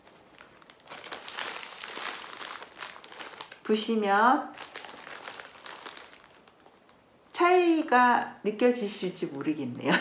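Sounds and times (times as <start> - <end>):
wrapping crinkling and rustling: 0.0 - 8.0.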